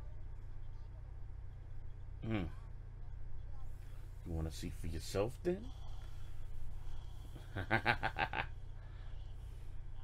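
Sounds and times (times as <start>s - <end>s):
steady low hum: 0.0s - 10.0s
man laughing: 7.4s - 8.6s.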